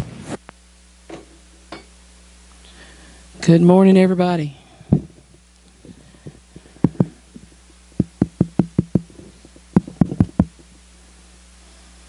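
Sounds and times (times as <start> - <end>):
fingers tapping on microphone: 8.0 - 10.6.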